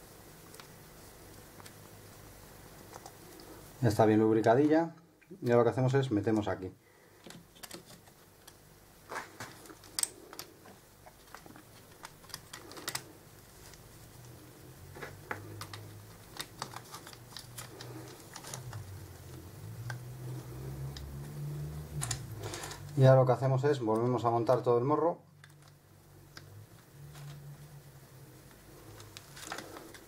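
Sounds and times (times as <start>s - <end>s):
clicks of plastic parts handled: 7.2s - 13.1s.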